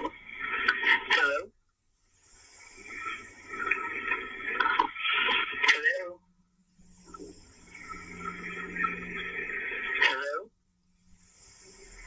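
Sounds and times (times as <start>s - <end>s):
phone call hiss and crackle: 0.0s - 12.0s
muffled voice: 0.9s - 1.5s, 5.6s - 6.2s, 9.9s - 10.5s
low hum: 6.2s - 12.0s.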